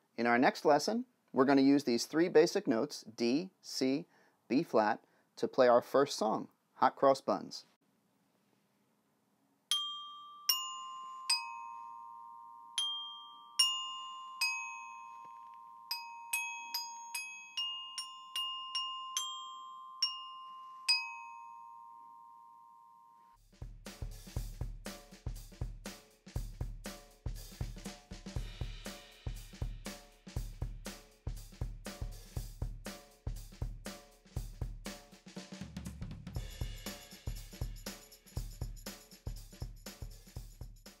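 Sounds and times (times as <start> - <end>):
glockenspiel notes: 9.7 - 23.4
music with drum beat: 23.4 - 41.0.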